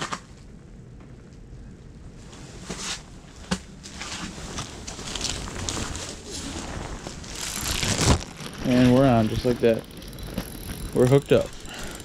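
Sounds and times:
clothing rustling and crackling: 0:02.2 - 0:11.7
clicks and crunches: 0:03.5 - 0:09.0.

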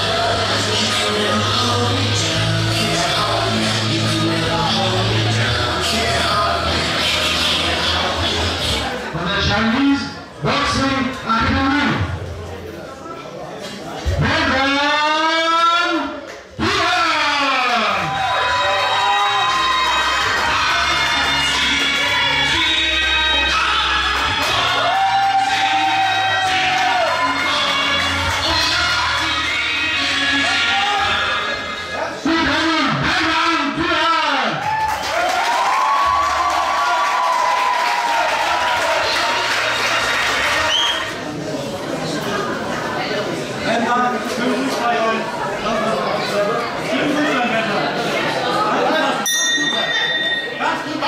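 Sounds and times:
entrance music with steady bass: 0:00.0 - 0:09.0, 0:18.2 - 0:31.8
crowd cheering: 0:16.6 - 0:31.7, 0:34.4 - 0:41.3.

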